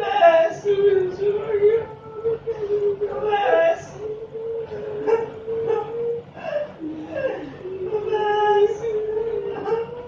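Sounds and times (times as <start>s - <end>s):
high wavering voice singing: 0.0s - 10.0s.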